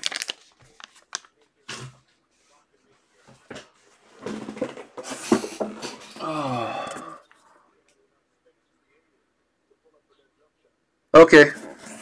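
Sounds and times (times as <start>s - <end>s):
boxes rustling and scraping on desk: 3.2s - 6.1s.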